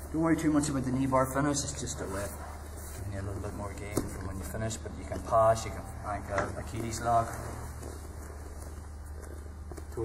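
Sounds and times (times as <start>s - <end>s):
fabric rustling on mats: 0.0s - 10.0s.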